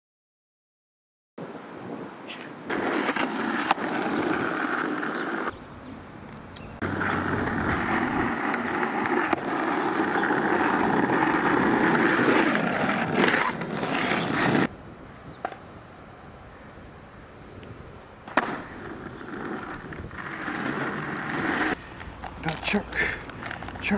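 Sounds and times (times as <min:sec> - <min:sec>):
skateboard wheels rolling on asphalt: 0:01.6 - 0:23.9.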